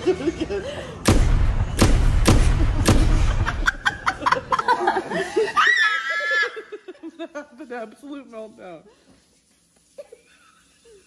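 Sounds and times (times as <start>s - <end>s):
women giggling: 0.0s - 1.0s, 3.4s - 7.6s
high-pitched squeal of laughter: 5.2s - 7.0s.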